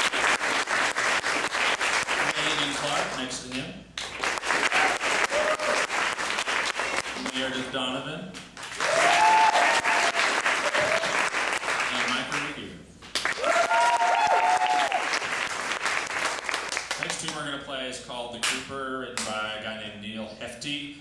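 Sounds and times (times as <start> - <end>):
audience applauding: 0.0 - 3.2, 4.0 - 7.6, 8.6 - 12.5, 13.1 - 17.4.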